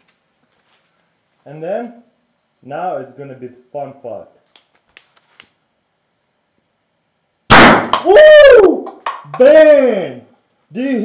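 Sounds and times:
sharp explosive bang: 7.5 - 8.1.

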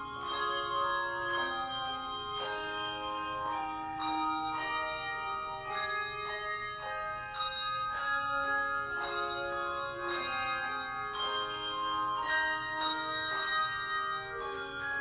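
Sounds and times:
handbell choir ringing chords: 0.0 - 15.0.

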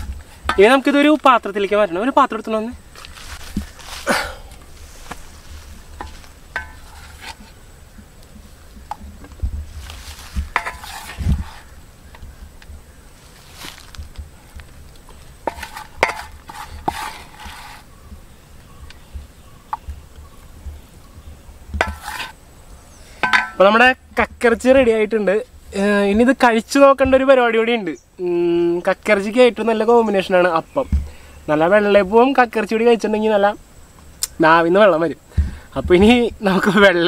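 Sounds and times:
spatula scraping steel bowl: 6.0 - 7.6, 10.5 - 11.8, 15.4 - 18.0, 21.8 - 22.4.

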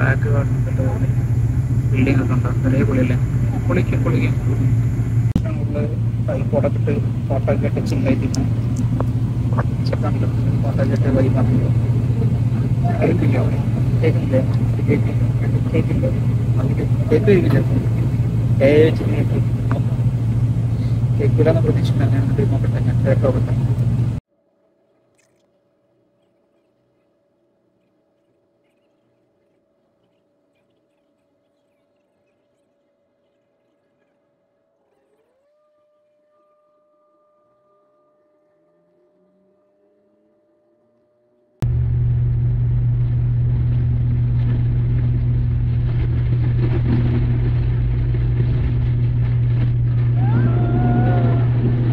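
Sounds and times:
airliner engines droning: 0.0 - 36.4, 37.9 - 51.9.

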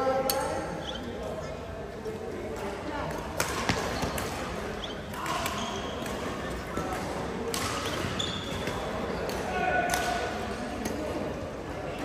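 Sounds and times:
players chattering: 0.0 - 12.0
shoes squeaking on court floor: 0.7 - 1.5, 3.6 - 7.0, 7.6 - 9.4.

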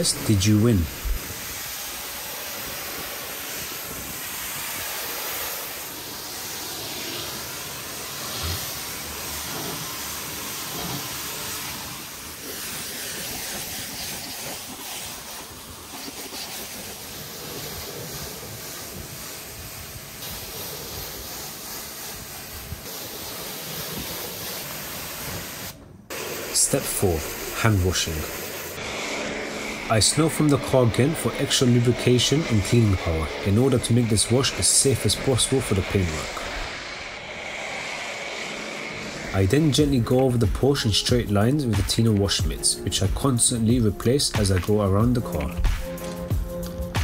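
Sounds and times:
pressure washer jet hissing: 0.0 - 47.0.

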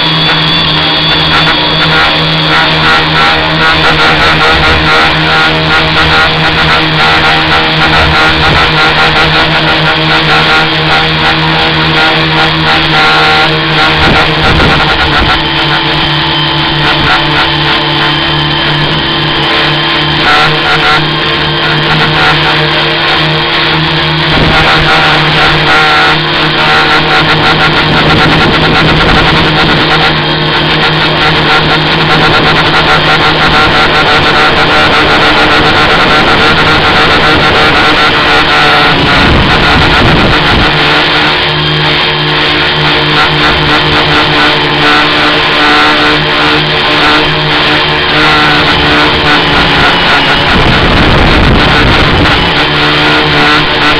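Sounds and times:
drone motors buzzing: 0.0 - 53.9.

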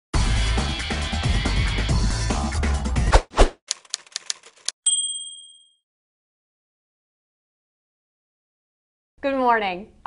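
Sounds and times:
typewriter key strikes: 3.7 - 4.7
typewriter bell ding: 4.9 - 5.8.

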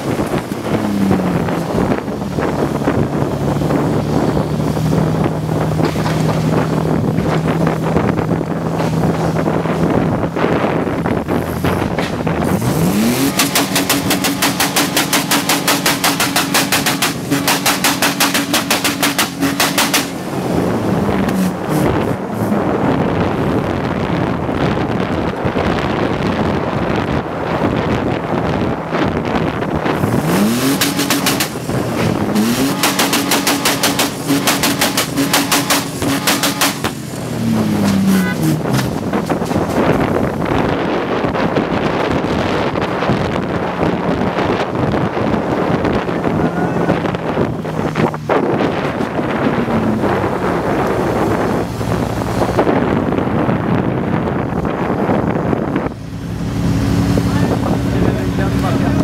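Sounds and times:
car engine revving hard: 0.0 - 59.0
wind rushing across microphone: 0.0 - 59.0.

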